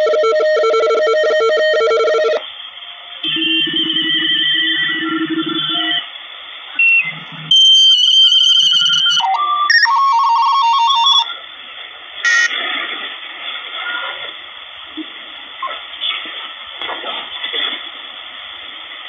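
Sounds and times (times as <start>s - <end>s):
radio band noise hiss: 0.0s - 19.0s
radio whistling tones: 2.9s - 6.1s, 6.7s - 11.4s, 12.2s - 12.6s
short radio chirp: 12.3s - 12.6s.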